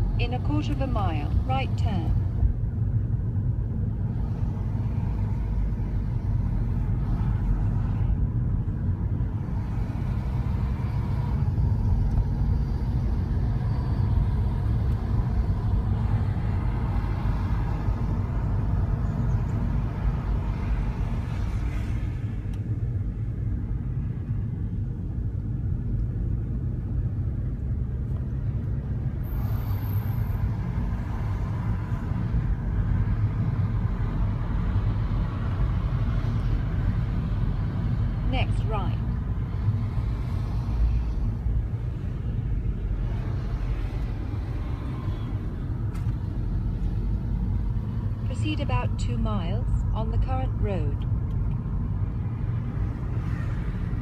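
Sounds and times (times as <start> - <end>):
car engine and tyre rumble: 0.0 - 54.0.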